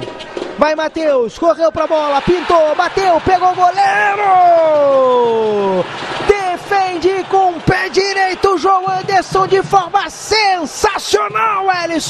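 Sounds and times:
excited sports commentary: 0:00.6 - 0:12.0
man shouting long drawn-out: 0:03.1 - 0:05.8.

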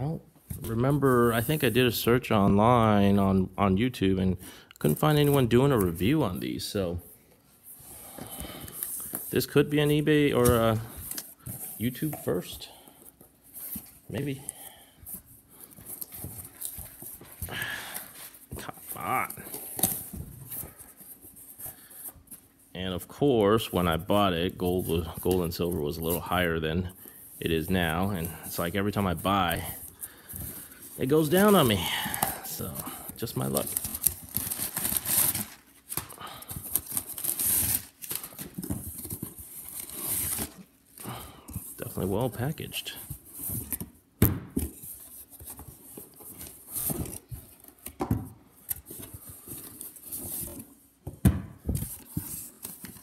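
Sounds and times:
packing paper rustling and crinkling: 0:23.9 - 0:43.9.

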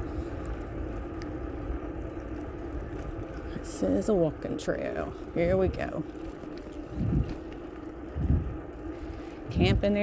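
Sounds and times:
wind rumbling on microphone: 0:04.3 - 0:10.0.

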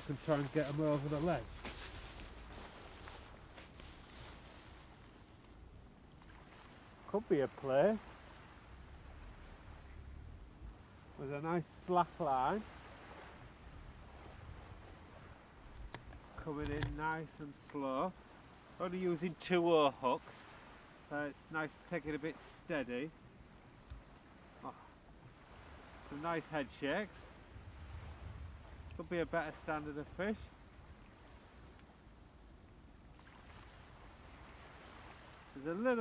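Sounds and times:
wind rumble on microphone: 0:08.0 - 0:11.2, 0:12.5 - 0:17.2, 0:27.1 - 0:35.6
low steady rumble: 0:08.3 - 0:11.8.

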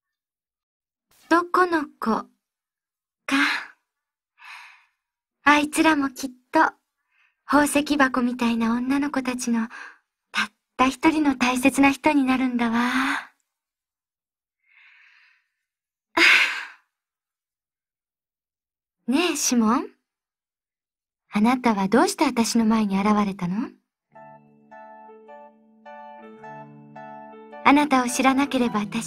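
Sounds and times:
soft breath: 0:04.4 - 0:05.0, 0:14.6 - 0:15.6.

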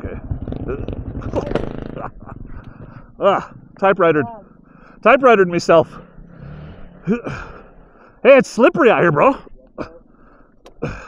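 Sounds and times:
dirt bike engine running: 0:00.0 - 0:11.0
rider grunting: 0:00.0 - 0:11.0.

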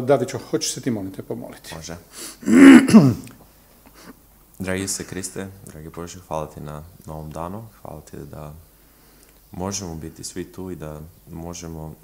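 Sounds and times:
person clearing throat: 0:02.4 - 0:03.4.

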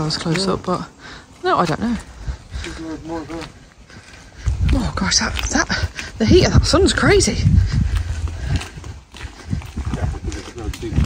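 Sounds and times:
footsteps on gritty tarmac: 0:00.0 - 0:11.0.

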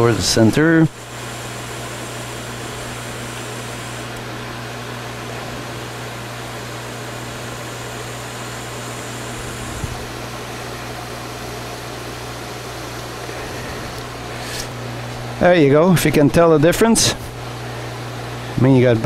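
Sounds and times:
lathe motor hum: 0:00.0 - 0:18.6.

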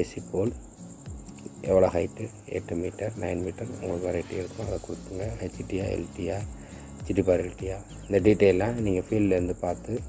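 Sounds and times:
man speaking voice-over: 0:01.5 - 0:10.0.

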